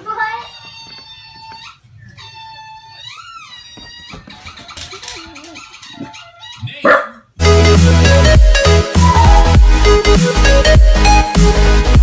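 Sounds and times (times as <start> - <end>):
dog whining: 0.3 - 6.9.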